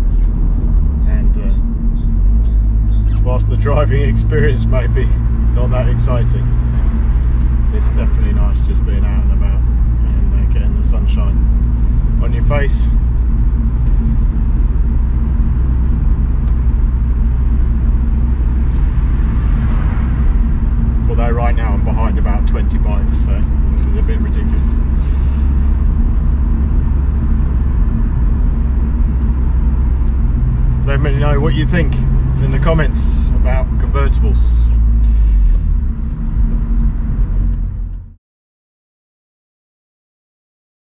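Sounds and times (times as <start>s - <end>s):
car engine and road noise: 0.0s - 38.2s.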